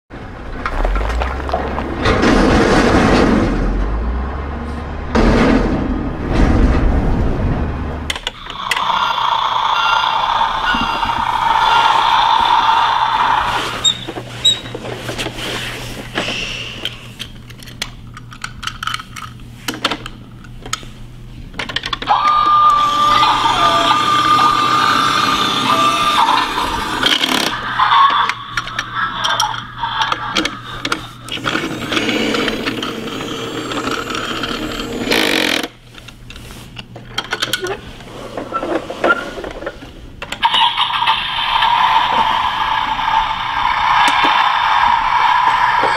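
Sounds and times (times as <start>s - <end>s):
low rumble: 0.2s - 9.3s
toy truck electronic sound effects: 8.3s - 14.6s, 22.1s - 35.7s, 40.4s - 45.9s
steady beep-like tone: 8.7s - 11.3s.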